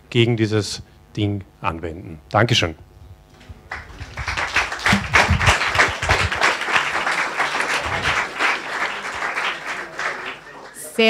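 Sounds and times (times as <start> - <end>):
audience applauding: 3.6 - 11.0.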